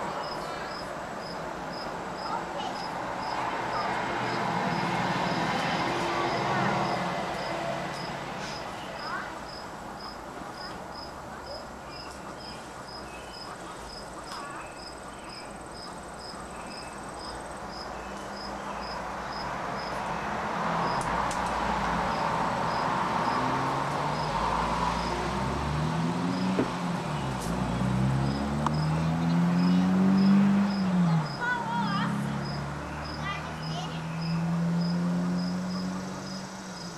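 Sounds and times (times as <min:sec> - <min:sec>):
insect chirping: 0:00.2 - 0:05.5, 0:09.0 - 0:20.3, 0:21.6 - 0:26.6, 0:27.2 - 0:31.4, 0:32.4 - 0:36.9.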